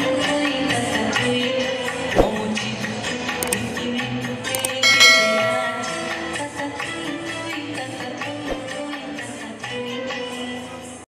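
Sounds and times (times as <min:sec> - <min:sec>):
music: 0:00.0 - 0:11.0
quick clicks: 0:04.6 - 0:04.8
bright bell chime: 0:04.8 - 0:06.5.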